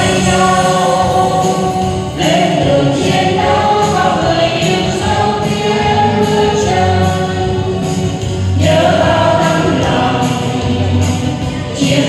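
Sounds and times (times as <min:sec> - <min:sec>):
group singing into microphones: 0:00.0 - 0:12.0.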